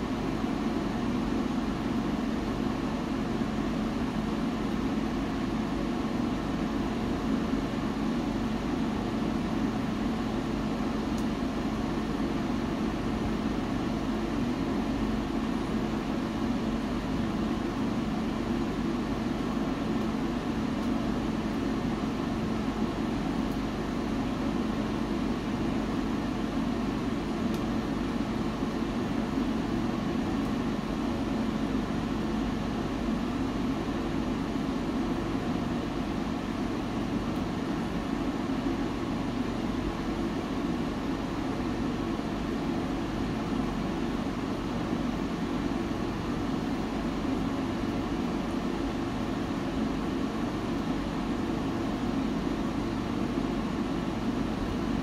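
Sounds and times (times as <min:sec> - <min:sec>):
wood stove fire rumbling: 0:00.0 - 0:55.0.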